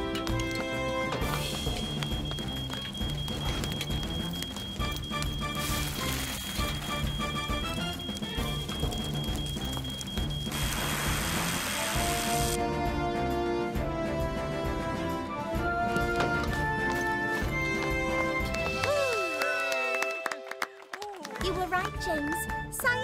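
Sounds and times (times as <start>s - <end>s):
quiet background music: 0.0s - 20.2s
dense crackling and scraping: 0.4s - 12.6s.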